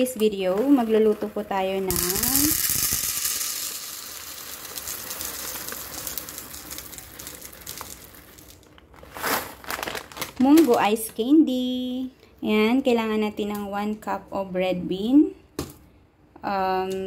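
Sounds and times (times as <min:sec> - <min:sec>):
dried beans pouring into plastic cup: 0:00.0 - 0:10.7
plastic packet crinkling: 0:00.0 - 0:11.3.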